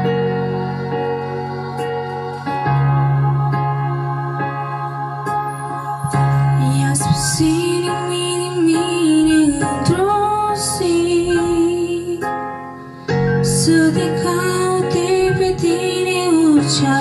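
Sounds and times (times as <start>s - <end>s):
soft musical accompaniment: 0.0s - 17.0s
woman singing slow song: 3.5s - 12.4s, 13.4s - 17.0s.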